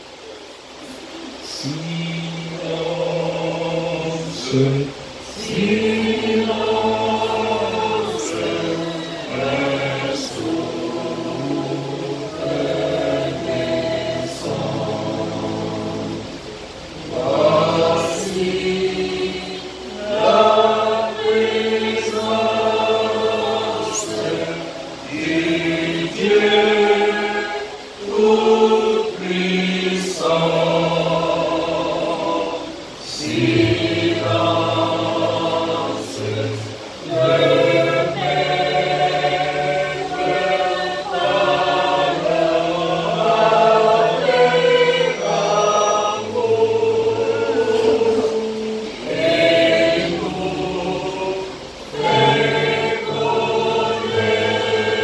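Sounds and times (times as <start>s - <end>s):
church choir singing a hymn: 0.0s - 55.0s.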